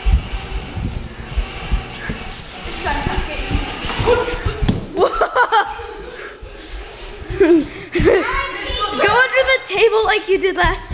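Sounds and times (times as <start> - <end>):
running feet on wooden floor: 0.0 - 5.0, 6.4 - 10.9.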